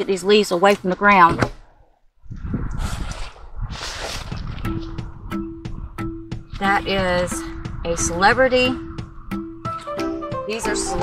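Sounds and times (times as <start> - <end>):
wind noise on microphone: 0.8 - 11.0.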